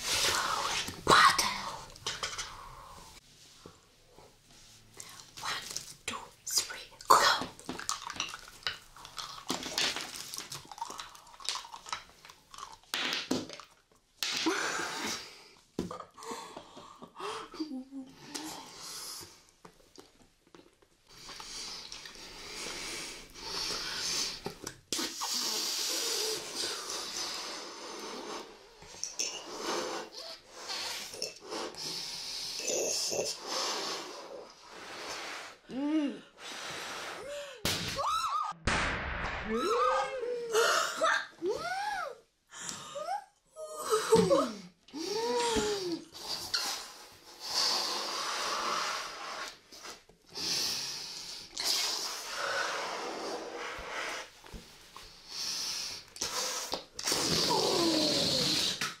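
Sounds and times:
gum chewing mouth sounds: 0:07.2 - 0:12.9.

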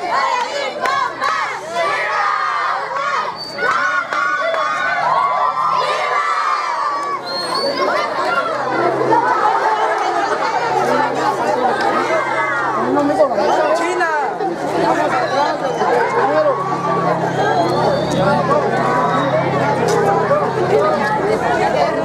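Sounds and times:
crowd of teenagers chattering: 0:00.0 - 0:22.0.

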